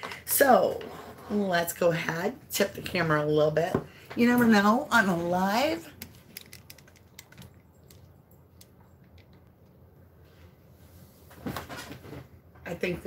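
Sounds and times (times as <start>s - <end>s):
camera handling clicks and knocks: 6.0s - 8.0s.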